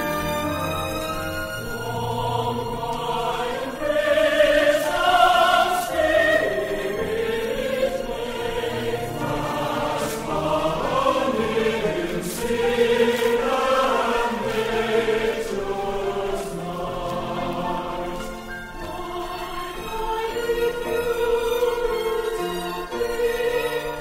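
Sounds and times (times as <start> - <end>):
choir singing sacred music: 0.0 - 24.0
instrumental accompaniment: 0.0 - 24.0.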